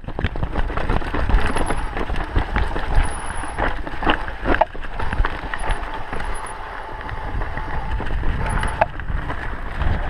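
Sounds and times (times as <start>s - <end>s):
bike rattling on dirt trail: 0.0s - 10.0s.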